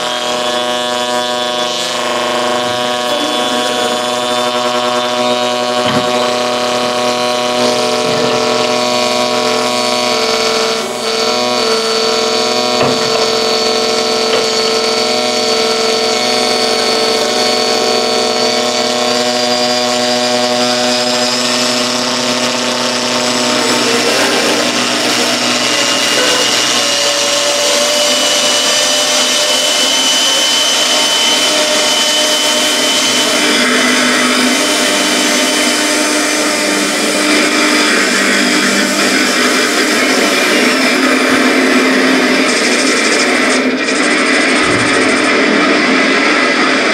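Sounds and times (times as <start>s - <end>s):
experimental noise music drone: 0.0s - 46.9s
high rising tone: 12.6s - 38.6s.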